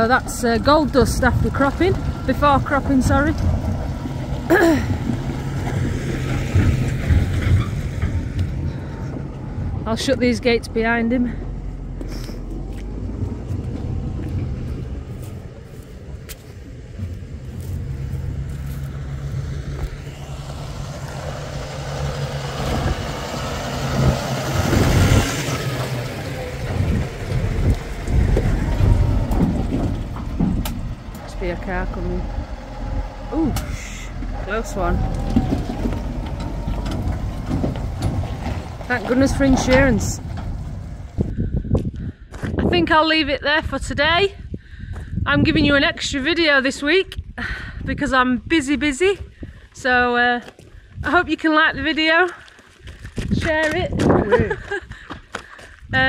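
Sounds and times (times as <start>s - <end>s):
tractor engine running: 0.0s - 56.0s
wind buffeting microphone: 0.0s - 56.0s.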